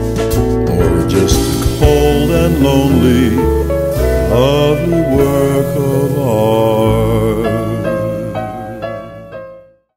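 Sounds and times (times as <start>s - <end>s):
country band backing: 0.0s - 8.4s
man singing with vibrato: 0.7s - 8.3s.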